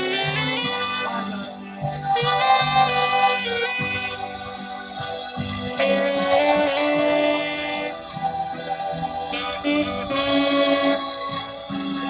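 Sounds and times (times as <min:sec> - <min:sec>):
saxophone slow melody: 0:00.0 - 0:12.0.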